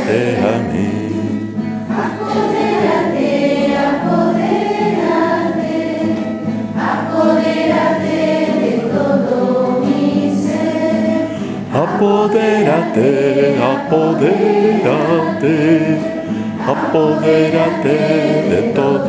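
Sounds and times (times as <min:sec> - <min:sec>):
group of voices singing a hymn: 0:00.0 - 0:19.0.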